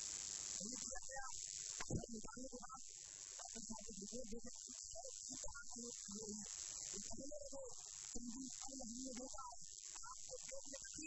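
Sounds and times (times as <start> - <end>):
steady high hiss: 0.0 - 0.8.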